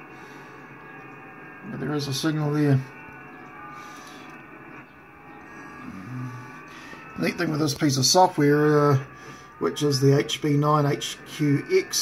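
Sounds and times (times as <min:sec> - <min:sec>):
radio band noise hiss: 0:00.0 - 0:12.0.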